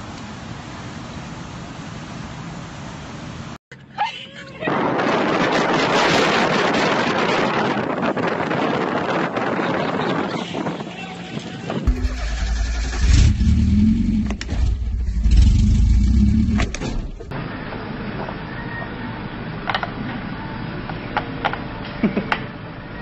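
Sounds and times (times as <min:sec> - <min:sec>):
wind and road noise: 0:00.0 - 0:22.6
heavy low rumble: 0:11.9 - 0:17.4.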